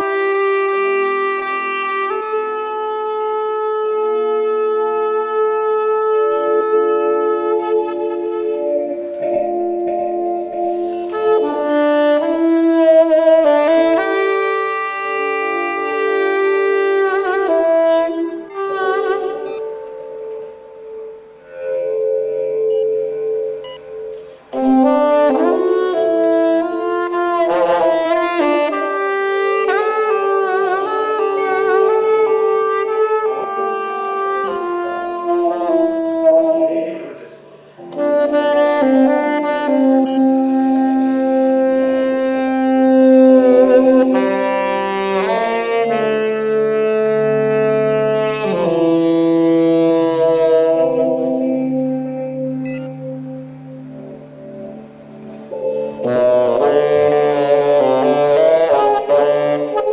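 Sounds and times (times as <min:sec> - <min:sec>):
saxophone melody: 0:00.0 - 0:59.9.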